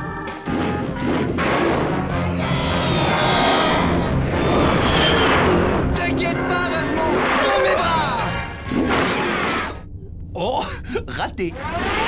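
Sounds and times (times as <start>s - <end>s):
cartoon soundtrack music: 0.0s - 9.7s.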